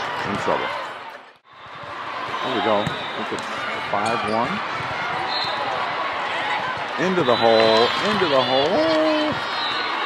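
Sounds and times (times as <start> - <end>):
spectator chatter: 0.0 - 10.0
volleyball being played: 0.1 - 10.0.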